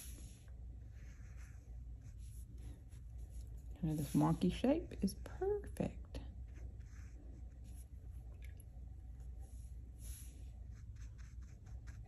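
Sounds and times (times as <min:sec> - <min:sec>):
paintbrush scratching on paper: 0:00.0 - 0:05.8, 0:06.4 - 0:08.0, 0:09.2 - 0:12.0
low steady hum: 0:00.0 - 0:12.0
woman speaking: 0:03.8 - 0:06.3.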